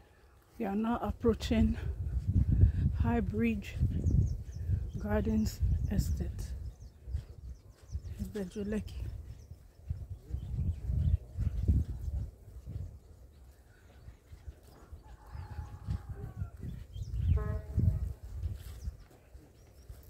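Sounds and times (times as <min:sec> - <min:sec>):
wind buffeting microphone: 0:01.1 - 0:20.0.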